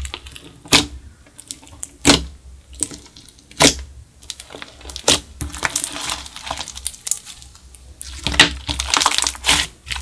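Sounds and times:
slime popping: 0.0s - 10.0s
sticky slime crackles: 0.0s - 10.0s.

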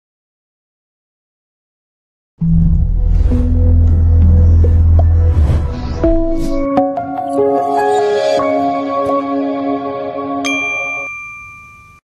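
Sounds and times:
bright bell-like ding: 10.4s - 12.0s.

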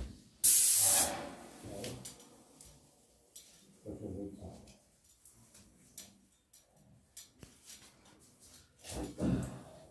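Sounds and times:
paint sprayer hiss: 0.4s - 1.3s.

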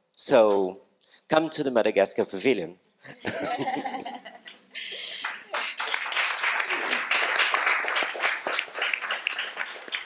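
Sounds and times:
crowd applauding: 4.5s - 10.0s.

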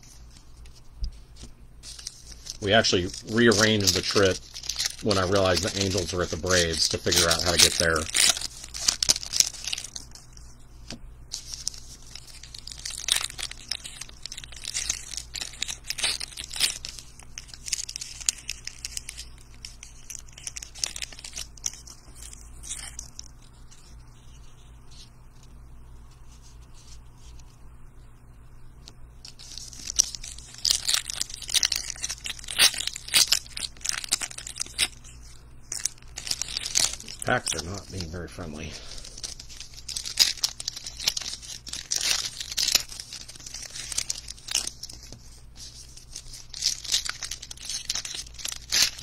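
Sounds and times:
cards being shuffled: 0.0s - 24.0s, 29.2s - 49.0s
wrappers crinkling and tearing: 1.4s - 24.0s, 29.2s - 49.0s.

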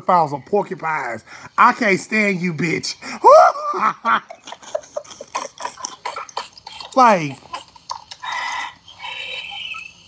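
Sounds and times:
man's wheezing laugh: 3.0s - 6.4s.

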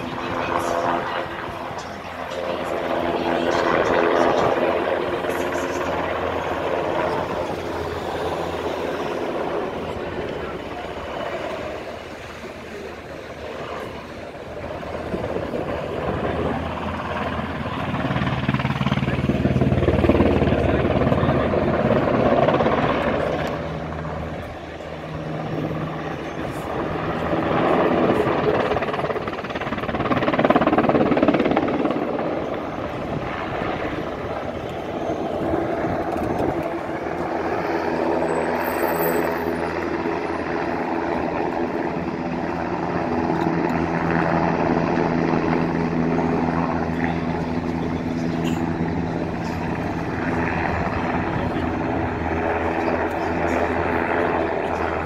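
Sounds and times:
helicopter flying: 0.0s - 55.0s.

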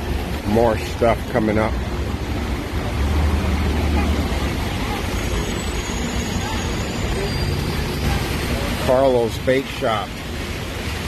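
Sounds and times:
tyres hissing on wet road: 0.0s - 11.0s.

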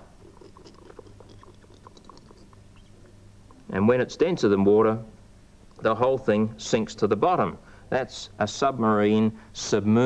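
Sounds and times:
steady low hum: 0.0s - 10.0s
wet clicks and ticks: 0.2s - 2.9s.

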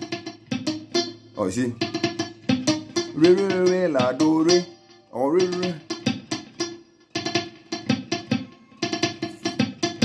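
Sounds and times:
muted electric guitar notes: 0.0s - 10.0s.

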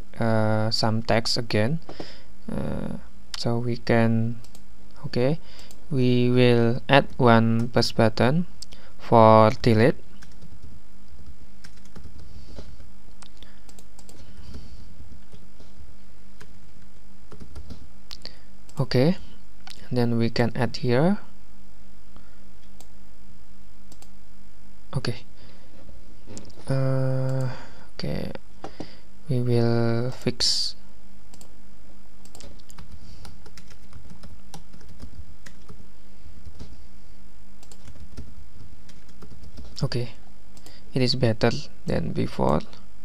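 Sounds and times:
low background hum: 0.0s - 43.0s
keyboard typing clicks: 11.6s - 12.3s, 13.2s - 14.5s, 17.3s - 17.8s, 32.2s - 35.8s, 37.6s - 38.3s, 38.9s - 39.8s.

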